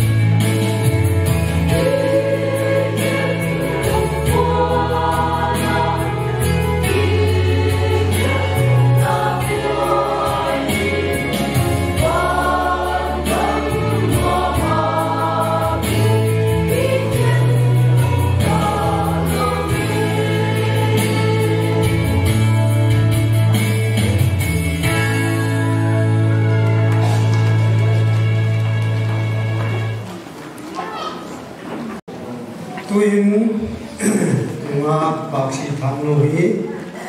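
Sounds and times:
instrumental backing: 0.0 - 30.4
mixed choir singing gospel: 0.8 - 23.8.

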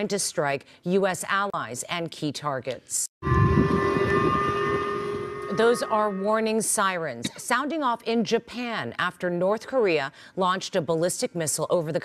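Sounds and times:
low rumble: 3.2 - 6.8
warning sirens steady tones: 3.2 - 7.0.

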